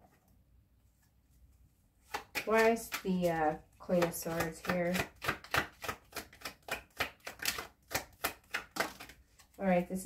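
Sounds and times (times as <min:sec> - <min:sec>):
cards being shuffled: 0:02.0 - 0:09.6.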